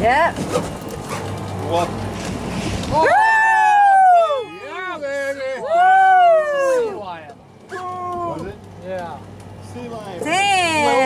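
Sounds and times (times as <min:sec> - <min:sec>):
boat and water noise: 0:00.0 - 0:11.0.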